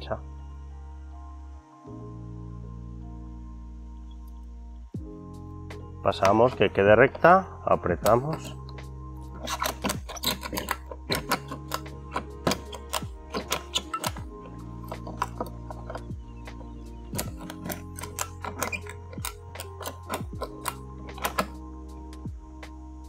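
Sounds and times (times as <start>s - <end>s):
background music: 0.0s - 23.0s
ratchet strap clicking: 8.0s - 22.3s.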